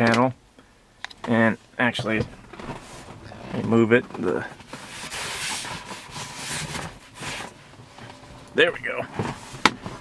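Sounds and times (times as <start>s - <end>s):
fabric rustling and scraping: 2.4s - 8.1s, 9.0s - 10.0s.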